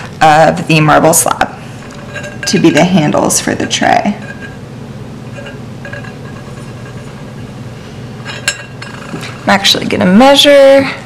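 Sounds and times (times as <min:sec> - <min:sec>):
low hum: 0:00.0 - 0:10.2
metal pulls clinking on marble: 0:05.3 - 0:07.2.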